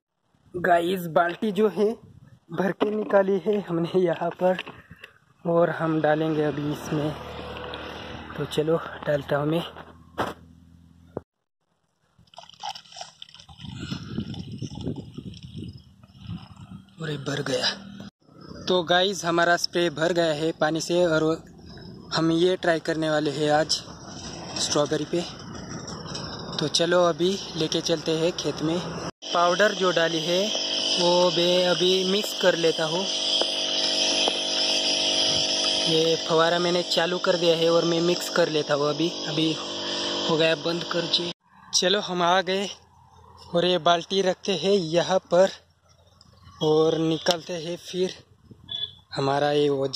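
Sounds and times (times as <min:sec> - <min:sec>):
water pouring into a tank: 0:12.2 - 0:14.9
sprayer pump motor humming: 0:27.3 - 0:41.3.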